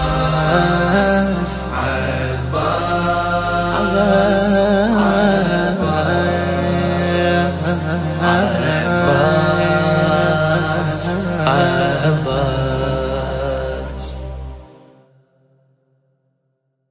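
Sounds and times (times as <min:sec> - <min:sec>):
man chanting devotional lament: 0:00.0 - 0:14.5
sustained low drone: 0:00.0 - 0:15.2.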